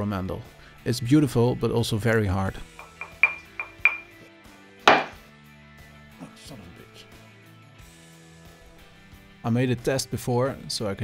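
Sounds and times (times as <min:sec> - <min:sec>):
knuckle taps on hard wood: 0:04.9 - 0:05.2.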